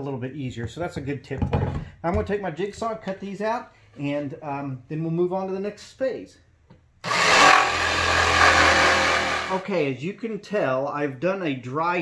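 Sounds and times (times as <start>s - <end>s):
jigsaw cutting wood: 7.0s - 9.6s.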